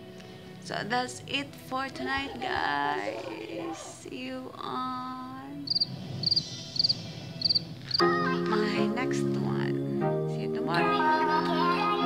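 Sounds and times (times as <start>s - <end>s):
background music melody: 0.0s - 12.0s
cricket chirping: 5.6s - 8.0s.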